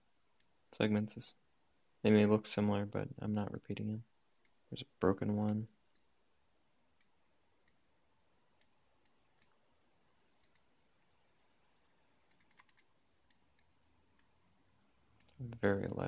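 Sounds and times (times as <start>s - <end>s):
computer mouse clicks: 7.0s - 7.9s, 8.6s - 9.6s, 10.4s - 10.7s, 12.2s - 14.4s.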